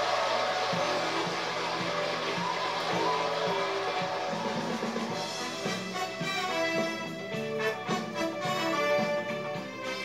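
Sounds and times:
band playing with brass section: 0:00.0 - 0:10.0.

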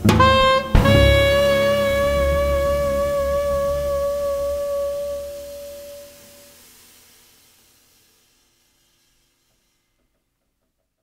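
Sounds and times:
double bass: 0:00.0 - 0:06.2
saxophone holding a note: 0:00.0 - 0:06.5
drums: 0:00.0 - 0:06.8.

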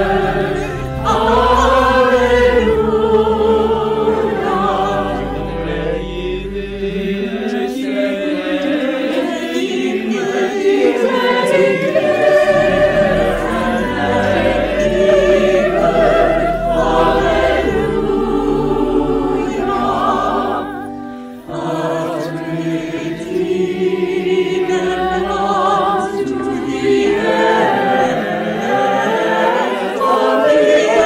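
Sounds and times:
choir singing an anthem: 0:00.0 - 0:31.0.

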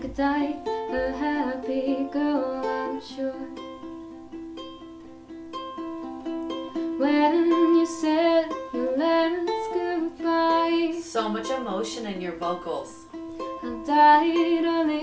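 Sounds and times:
woman singing: 0:00.0 - 0:03.7, 0:06.8 - 0:15.0
ukulele finger-picking melody: 0:00.0 - 0:15.0.

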